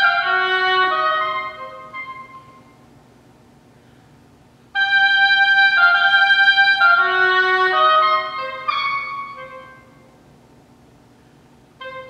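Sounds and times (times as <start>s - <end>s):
oboe playing high notes: 0.0s - 2.8s, 4.8s - 10.1s, 11.8s - 12.0s.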